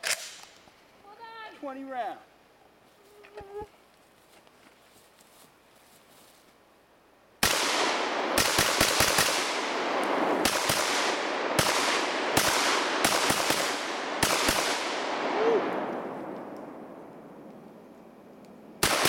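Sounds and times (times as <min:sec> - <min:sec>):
shotgun shots with echo: 0:07.4 - 0:15.3.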